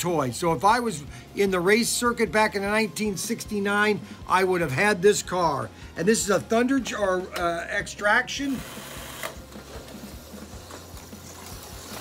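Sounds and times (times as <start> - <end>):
slot car electric motor running: 8.5 - 12.0.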